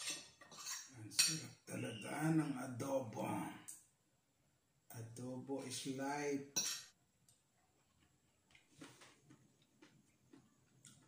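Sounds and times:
cutlery scraping a plate: 0:00.0 - 0:01.6.

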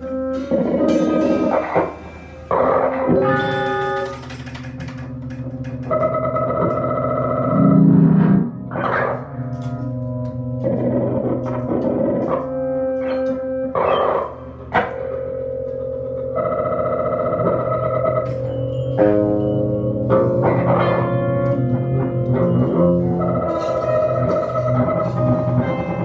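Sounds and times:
electric guitar held tones: 0:00.0 - 0:26.0
keyboard electronics: 0:00.0 - 0:26.0.

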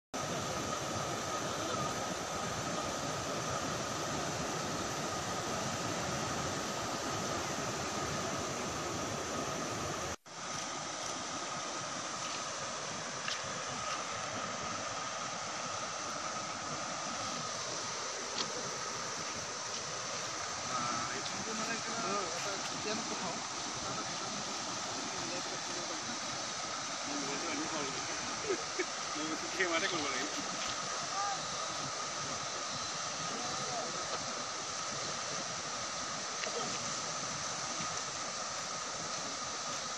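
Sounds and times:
faint voices: 0:00.2 - 0:04.0
floodwater rushing: 0:00.2 - 0:39.9.

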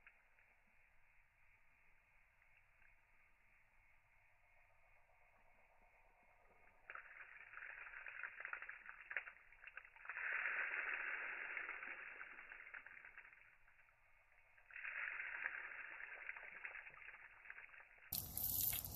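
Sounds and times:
water spattering onto pavement: 0:06.7 - 0:18.9.

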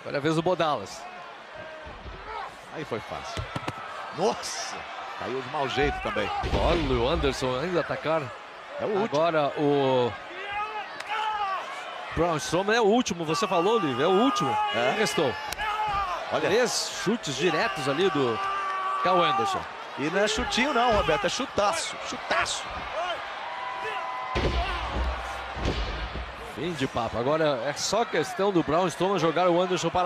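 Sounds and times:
wrestling arena ambience: 0:00.0 - 0:30.0.

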